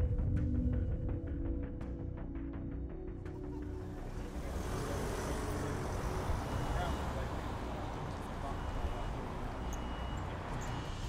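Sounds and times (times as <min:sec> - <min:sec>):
car passing close by: 0:04.0 - 0:11.0.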